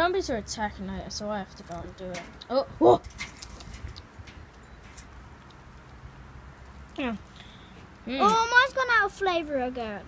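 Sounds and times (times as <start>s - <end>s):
light clicks and rustles: 1.5s - 8.5s.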